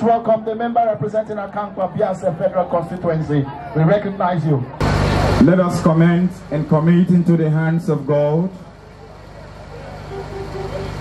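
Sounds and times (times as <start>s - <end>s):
faint voices: 1.4s - 11.0s
low hum and rumble: 4.8s - 11.0s.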